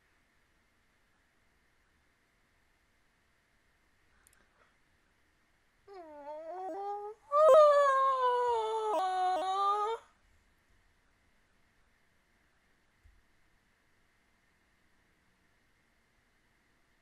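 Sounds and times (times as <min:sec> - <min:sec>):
woman's muffled squeal: 0:05.9 - 0:10.0.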